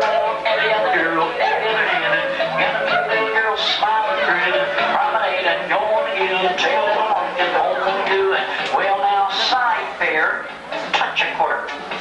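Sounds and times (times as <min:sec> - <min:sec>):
square dance caller chanting: 0:00.0 - 0:11.6.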